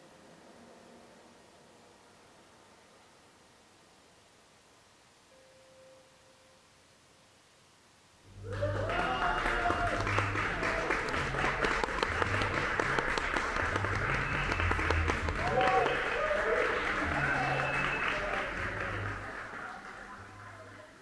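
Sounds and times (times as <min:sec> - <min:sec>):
audience clapping: 0:08.3 - 0:21.0
audience whooping and cheering: 0:08.3 - 0:21.0.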